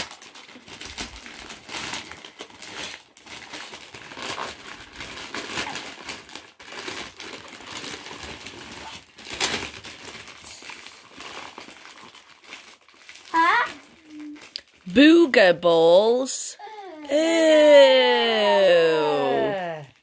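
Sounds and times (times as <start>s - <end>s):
wrapping paper rustling: 0.0s - 15.0s.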